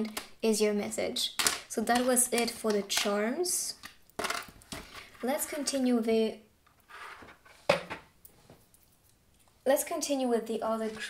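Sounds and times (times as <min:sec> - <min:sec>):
hard object set down knock: 0:07.7 - 0:08.1.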